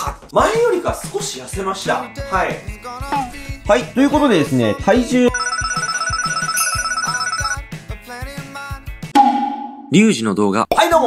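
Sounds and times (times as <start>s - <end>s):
bell-like ringing with trill: 5.4s - 7.6s.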